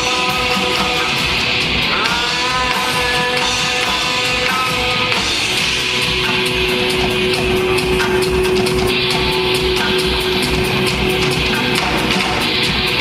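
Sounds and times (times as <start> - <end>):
rock band playing: 0.0 - 13.0.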